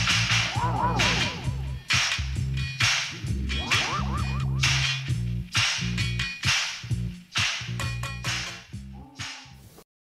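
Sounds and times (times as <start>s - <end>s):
pulsing bass line: 0.0s - 6.3s
sliding synth tones: 3.3s - 4.8s.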